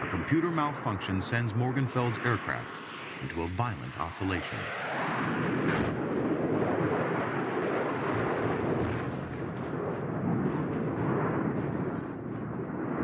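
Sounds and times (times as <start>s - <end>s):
jet crashing and skidding: 0.1s - 9.8s.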